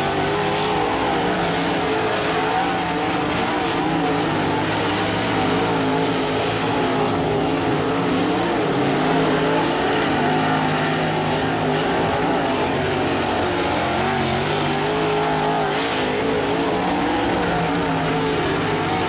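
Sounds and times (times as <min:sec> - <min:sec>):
race car engine running: 0:00.0 - 0:19.0.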